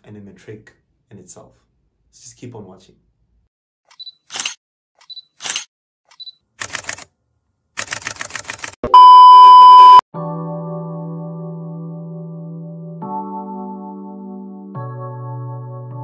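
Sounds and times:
steady beep tone: 8.9 - 10.0
electronic keyboard chord: 10.2 - 16.0.

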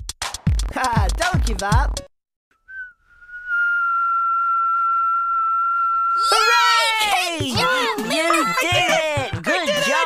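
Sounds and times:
song with a beat: 0.0 - 2.1
steady high whistling tone: 2.7 - 6.5.

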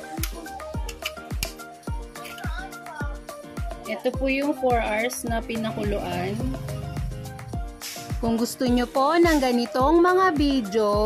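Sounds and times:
low drum thump: 5.4 - 8.3
sustained pitched notes: 5.5 - 7.6.

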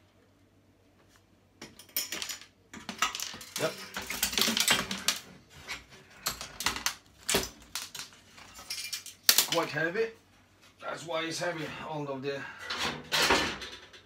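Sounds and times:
sheet metal rattling and clanking: 12.6 - 14.0.

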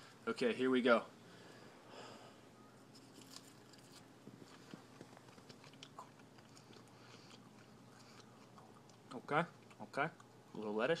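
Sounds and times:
lettuce crunching when chewed: 2.9 - 10.7.

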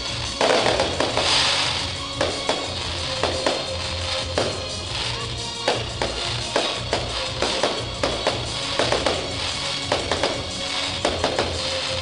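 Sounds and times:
firework bangs: 0.0 - 12.0
firework crackle hiss: 0.0 - 12.0
music with a beat: 0.0 - 12.0.

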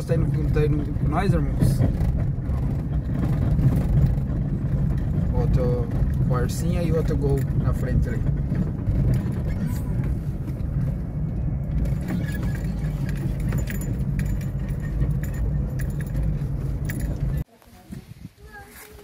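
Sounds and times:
rattles and clicks: 0.0 - 17.5
car engine and road rumble: 0.0 - 18.8.

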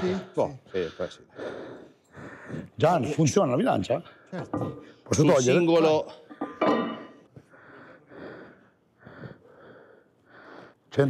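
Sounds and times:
man breathing hard: 0.8 - 2.8, 7.4 - 10.9.

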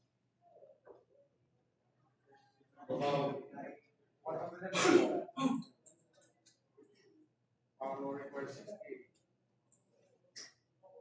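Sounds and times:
person clearing throat: 4.7 - 5.7.

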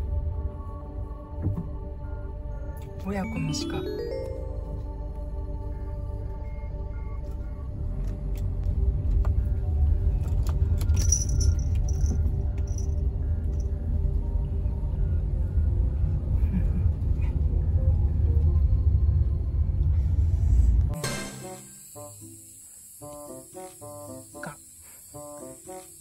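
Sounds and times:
car moving slowly: 4.5 - 21.0.

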